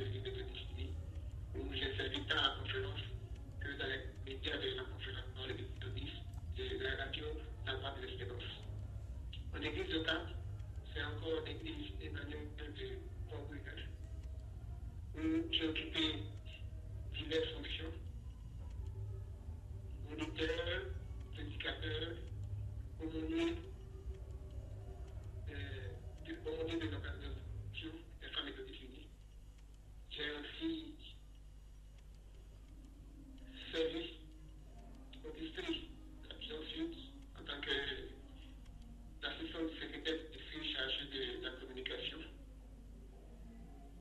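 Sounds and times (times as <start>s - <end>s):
steady low hum: 0.0s - 44.0s
person speaking over video call: 1.6s - 8.7s, 9.3s - 14.0s, 15.2s - 18.0s, 20.1s - 23.6s, 25.4s - 29.2s, 30.1s - 31.2s, 35.1s - 38.3s, 39.2s - 42.3s.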